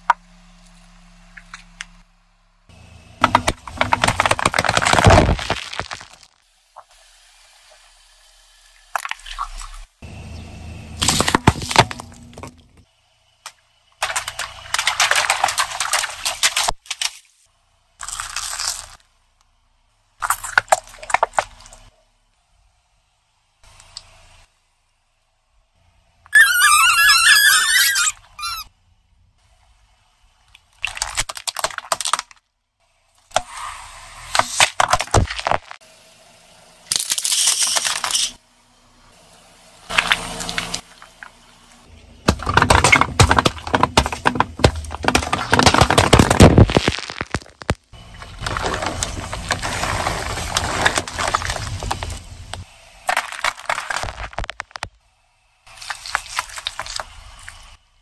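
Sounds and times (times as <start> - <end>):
tyre crushing soda cans: 3.2 - 6.4, 11.0 - 12.8, 14.0 - 17.2, 42.0 - 54.9.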